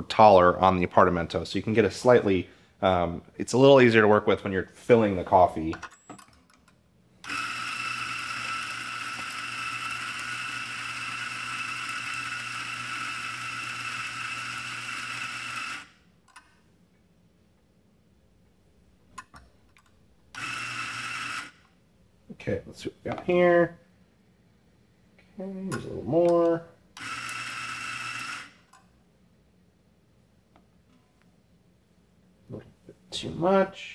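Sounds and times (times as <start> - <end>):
coffee grinder running: 7.2 - 16.0, 20.4 - 21.6, 27.0 - 28.7.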